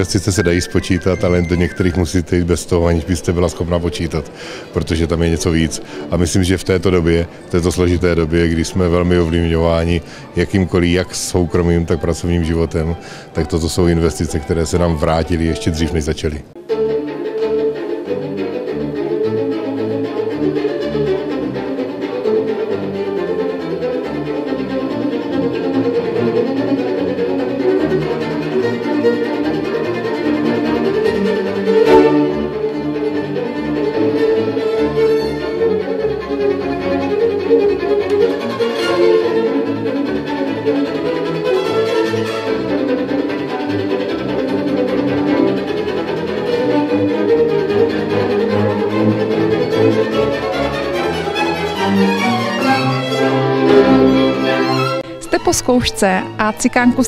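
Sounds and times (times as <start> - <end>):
solo violin: 0.0 - 15.9, 16.5 - 57.0
string chamber orchestra: 0.0 - 57.0.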